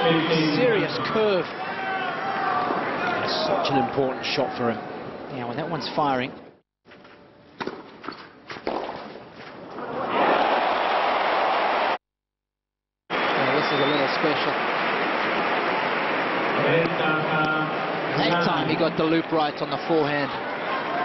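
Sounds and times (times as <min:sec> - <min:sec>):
crowd noise: 0:13.1 - 0:21.0.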